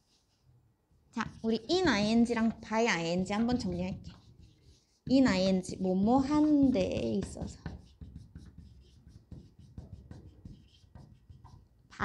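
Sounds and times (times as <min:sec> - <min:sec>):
marker writing on whiteboard: 0:00.0 - 0:12.0.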